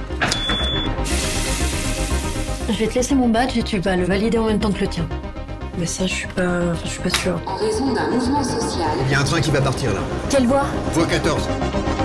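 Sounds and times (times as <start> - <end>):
trailer music with steady beat: 0.0 - 12.0
badge reader beep: 0.3 - 1.0
running tap hissing: 1.0 - 3.0.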